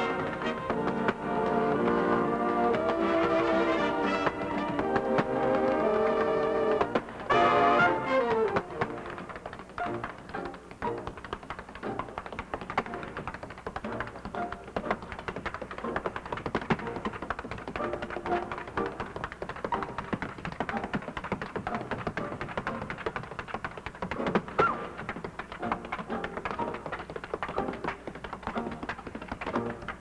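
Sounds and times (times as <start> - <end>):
tap shoes clicking on stage floor: 0.0 - 30.0.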